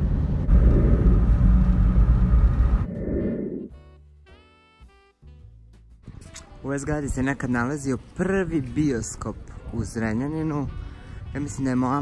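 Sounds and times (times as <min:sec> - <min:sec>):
car road and engine rumble: 0:00.0 - 0:03.3
music: 0:03.6 - 0:12.0.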